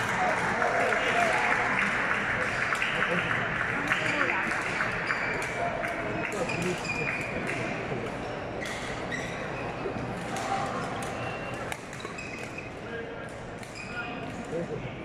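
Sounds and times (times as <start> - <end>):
crowd chatter: 0.0 - 15.0
shoes squeaking on court floor: 4.9 - 5.6, 8.2 - 10.0, 11.1 - 12.9.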